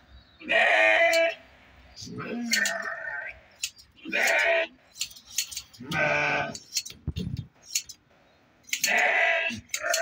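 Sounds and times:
goat or sheep bleating: 0.4 - 1.4, 4.0 - 4.8, 5.8 - 6.6, 8.8 - 10.0.

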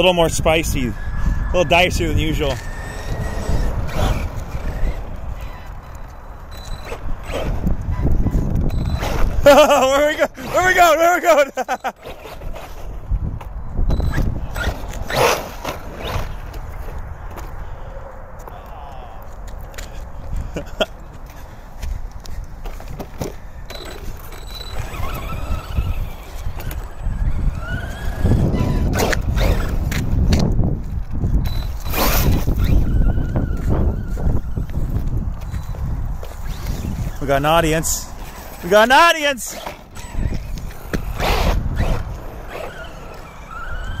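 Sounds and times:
tyres on asphalt: 0.0 - 44.0
electric motor whine: 1.0 - 9.4, 23.7 - 30.2, 39.6 - 44.0.

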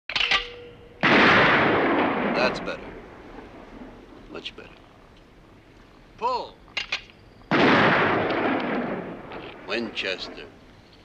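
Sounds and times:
shotgun shot: 1.0 - 2.9, 7.5 - 10.5.

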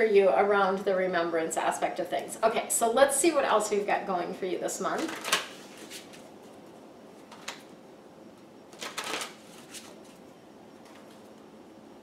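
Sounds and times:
cards being shuffled: 8.7 - 10.2.

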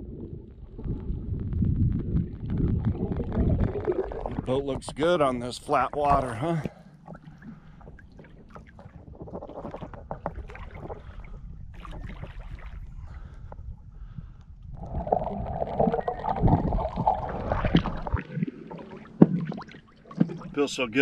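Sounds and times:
muffled underwater rushing and bubbling: 0.0 - 21.0
water lapping and splashing: 0.0 - 21.0.

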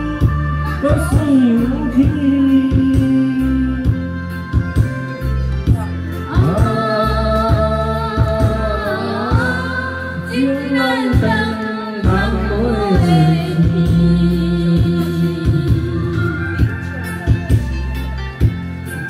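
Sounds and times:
man singing: 0.0 - 5.0, 6.1 - 17.2
woman singing: 0.0 - 5.1, 5.7 - 16.7
karaoke backing track: 0.0 - 19.0.

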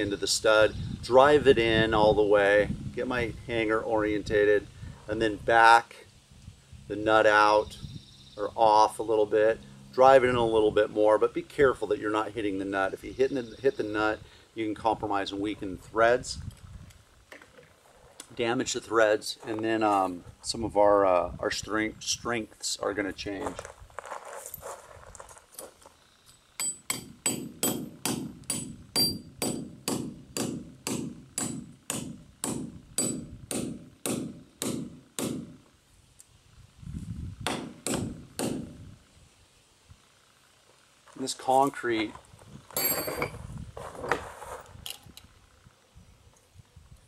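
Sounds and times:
hammer striking metal stud: 26.6 - 35.6, 37.5 - 38.7
metal clinking: 42.8 - 43.4.

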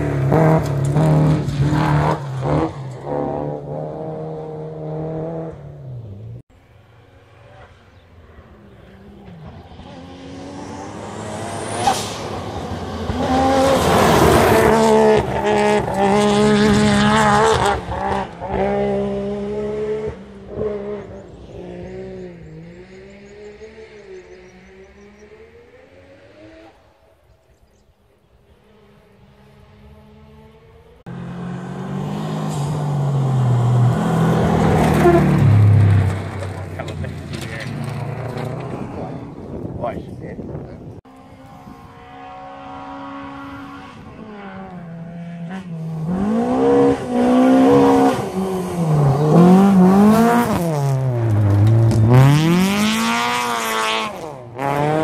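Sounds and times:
rally car engine high-revving: 0.0 - 6.4, 8.4 - 27.0, 28.7 - 39.6, 41.0 - 55.0
gravel and tyre noise: 0.0 - 55.0.

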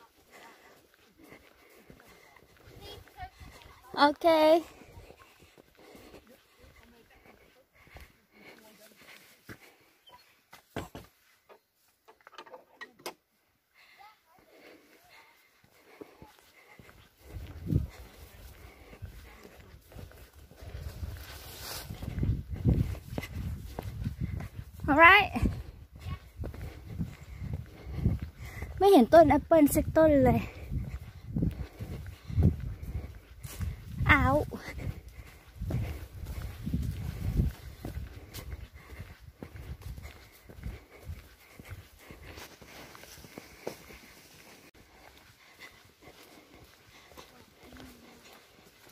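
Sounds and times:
footsteps on dirt path: 0.0 - 12.3, 13.4 - 48.9.

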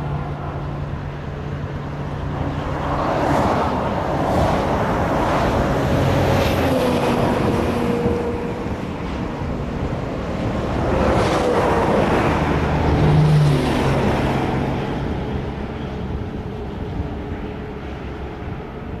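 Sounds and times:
car road noise: 0.0 - 19.0.

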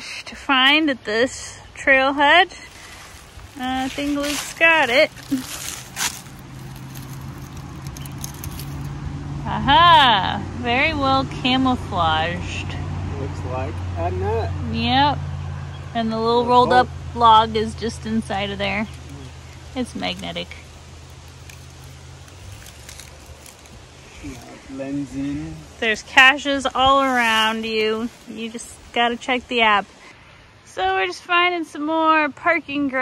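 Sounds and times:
engine humming: 0.0 - 33.0
steady low rumble: 1.0 - 30.6
fingers scratching on wood: 2.7 - 8.9, 18.4 - 24.5.

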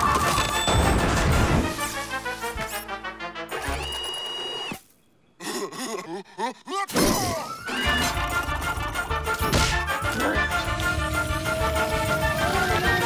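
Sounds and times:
comic cartoon music: 0.0 - 3.9, 7.1 - 13.0.

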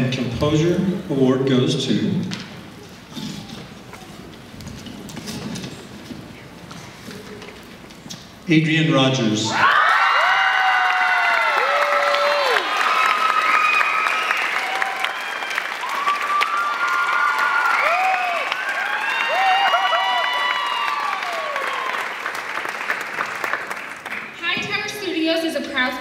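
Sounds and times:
crowd cheering and whooping: 9.5 - 22.6
audience applauding: 9.6 - 24.4.

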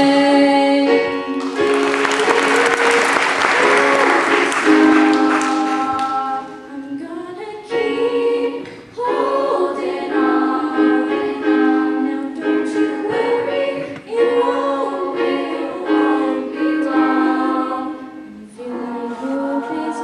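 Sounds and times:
girls' choir singing: 0.8 - 20.0
audience applause: 1.4 - 6.4.

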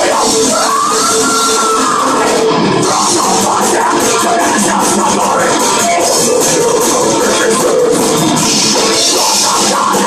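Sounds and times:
distorted electric guitars: 0.0 - 10.0
drum kit: 0.0 - 10.0.

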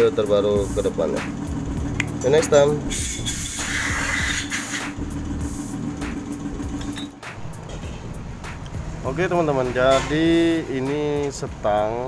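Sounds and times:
steady hum: 0.0 - 9.8.

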